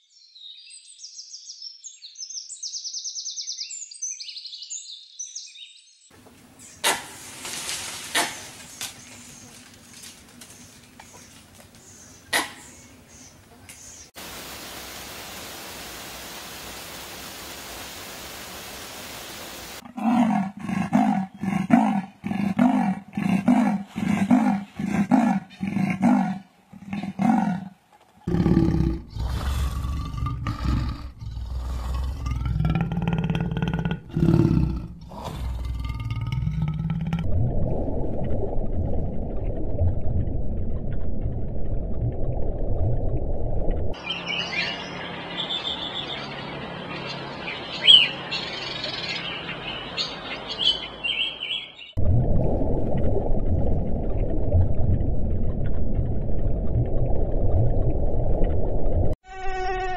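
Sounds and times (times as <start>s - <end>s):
bird chirping: 0.0s - 6.9s, 44.0s - 52.0s
steady low rush of noise: 14.2s - 19.8s
deep growls: 28.3s - 37.4s.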